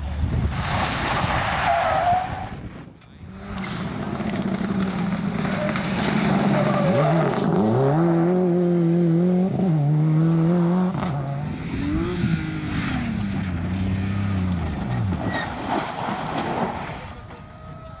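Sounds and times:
rally car engine accelerating: 2.5 - 17.4.

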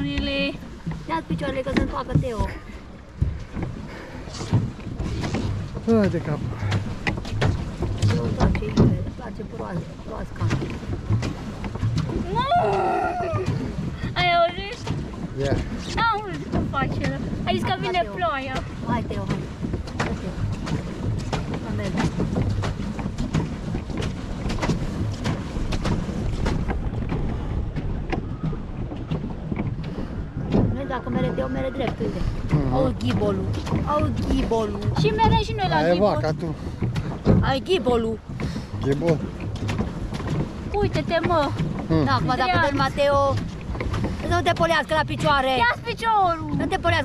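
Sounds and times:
boat knocking and splashing: 0.0 - 47.0
paddle wheel churning water: 0.0 - 47.0
wind buffeting microphone: 0.0 - 47.0.

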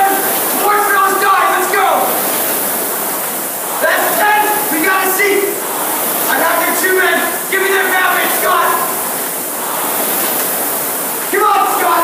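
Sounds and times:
rowing machine flywheel whirring: 0.0 - 12.0.

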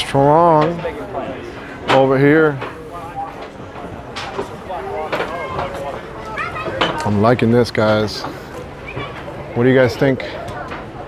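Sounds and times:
people talking: 0.0 - 8.6, 9.4 - 11.0
crowd background noise: 0.0 - 11.0.

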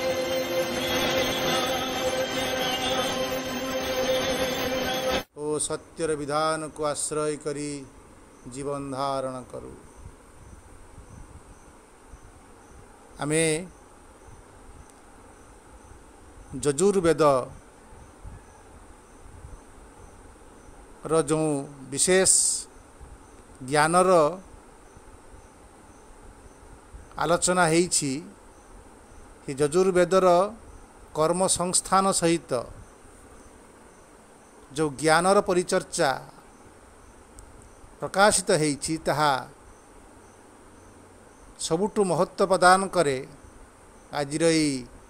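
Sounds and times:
background hiss: 0.0 - 45.0
insect chirping: 6.4 - 45.0
man speaking: 13.2 - 13.7, 21.1 - 22.7, 34.7 - 36.4, 38.0 - 39.6, 41.6 - 43.4, 44.2 - 44.9.

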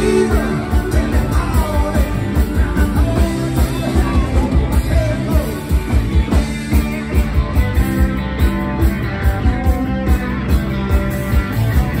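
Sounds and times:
drum kit fast beat: 0.0 - 12.0
electric guitars: 0.0 - 12.0.

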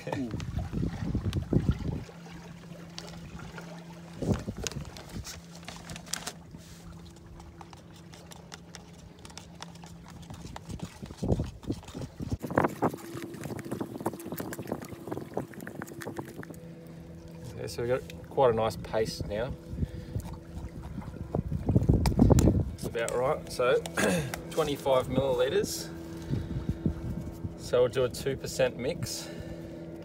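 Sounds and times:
steady low hum: 0.0 - 30.0
screwdriver scraping plastic cup: 7.7 - 12.4.

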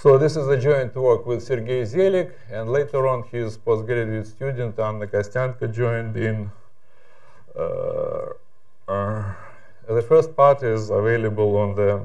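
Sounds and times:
person speaking: 0.0 - 6.6, 7.5 - 12.0
man saying uh: 7.5 - 12.0.

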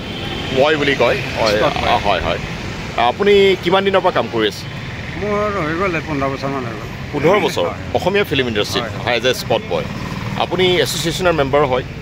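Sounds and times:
road traffic hum: 0.0 - 12.0
man talking: 0.5 - 11.9.

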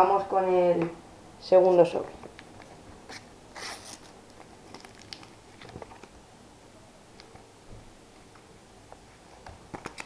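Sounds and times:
paper wrapper crinkling: 2.4 - 6.1.

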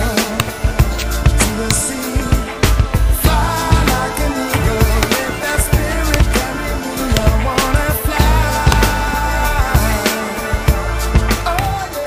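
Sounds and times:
music with drum beat: 0.0 - 12.0.

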